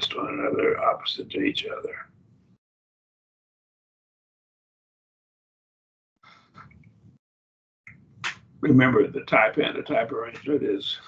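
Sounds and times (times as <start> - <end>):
faint breath: 6.2 - 6.7.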